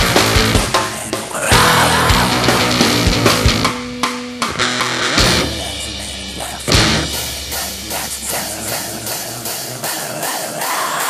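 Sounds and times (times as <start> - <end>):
distorted garage rock music: 0.0 - 11.0.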